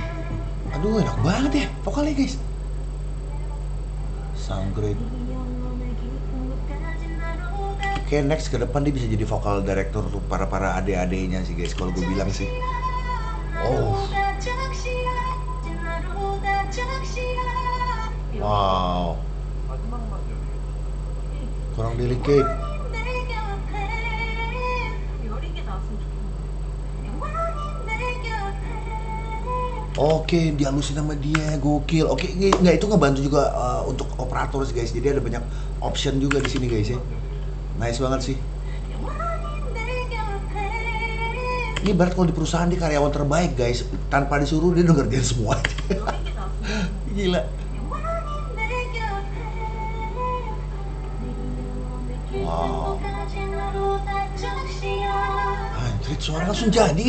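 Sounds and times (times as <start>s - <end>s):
woman singing: 0.0s - 1.8s, 3.2s - 4.4s, 5.0s - 8.3s, 11.7s - 18.6s, 22.2s - 26.2s, 27.0s - 30.3s, 38.9s - 42.0s, 47.7s - 56.6s
steady low hum: 0.0s - 57.0s.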